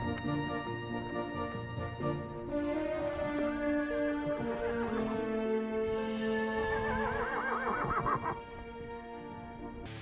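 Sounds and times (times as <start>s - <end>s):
background music with held notes: 0.0s - 10.0s
horse whinnying: 6.3s - 8.4s.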